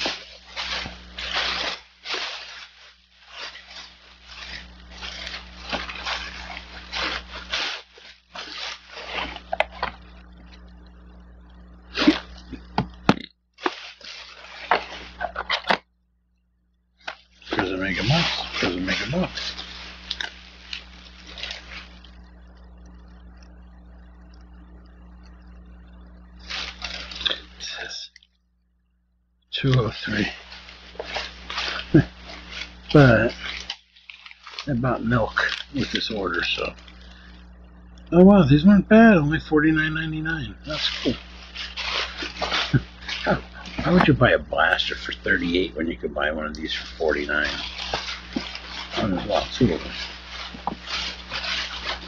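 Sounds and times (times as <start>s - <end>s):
plastic bag rustling: 0.0s - 10.6s, 11.9s - 12.8s, 13.6s - 15.8s, 17.0s - 22.2s, 26.4s - 27.6s, 29.9s - 37.4s, 40.6s - 52.0s
low hum: 0.0s - 52.0s.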